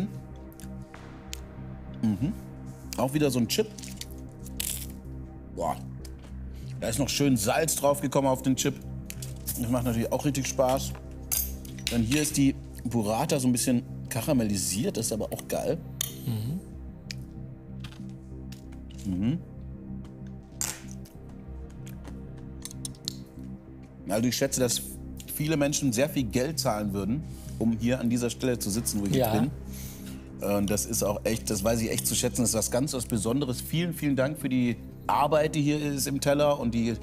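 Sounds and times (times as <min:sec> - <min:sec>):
background music: 0:00.0 - 0:37.0.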